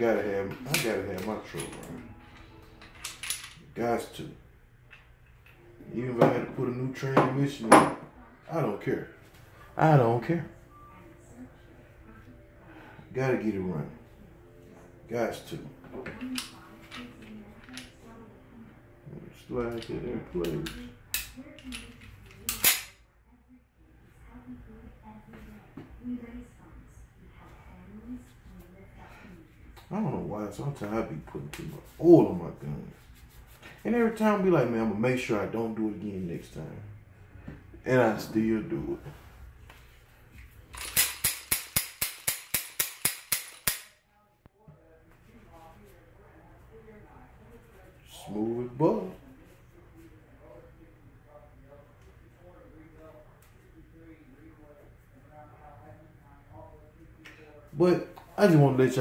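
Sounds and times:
pistol slide clicking: 0:22.5 - 0:22.9, 0:40.8 - 0:44.0.

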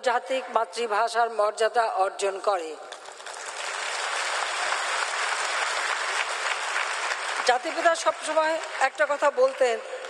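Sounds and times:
audience applauding: 0:03.2 - 0:08.9.

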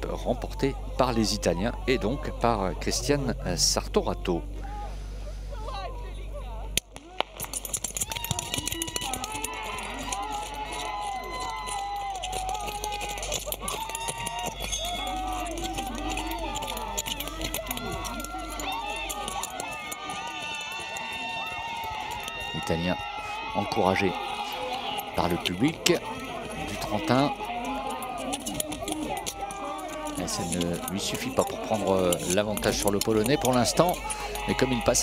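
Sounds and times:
spectators shouting and cheering: 0:00.0 - 0:03.2, 0:04.0 - 0:35.0.

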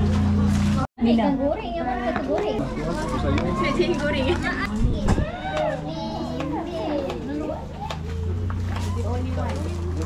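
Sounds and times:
people and children chattering: 0:00.6 - 0:10.0.

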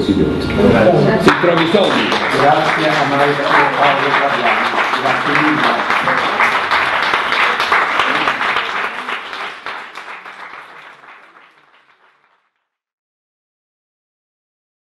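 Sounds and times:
voices in crowd: 0:00.0 - 0:10.1
audience applauding: 0:01.2 - 0:12.6.

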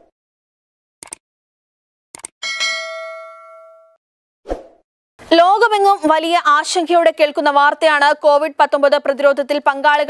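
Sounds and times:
bell-like notification ding: 0:02.4 - 0:04.0.

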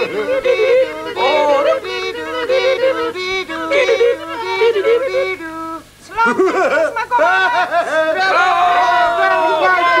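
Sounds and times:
high voices singing bouncing tune: 0:00.0 - 0:06.0.

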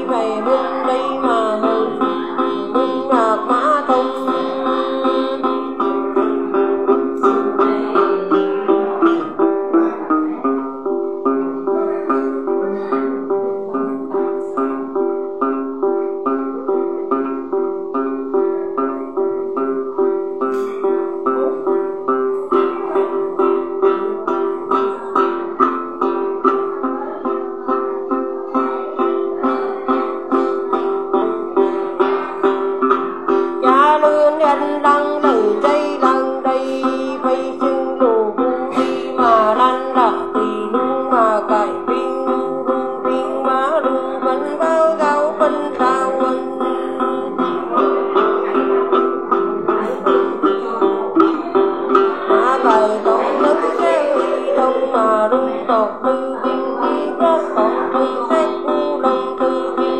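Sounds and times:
woman singing: 0:00.0 - 0:10.6, 0:20.4 - 0:59.9
plucked lute: 0:00.0 - 0:59.9.

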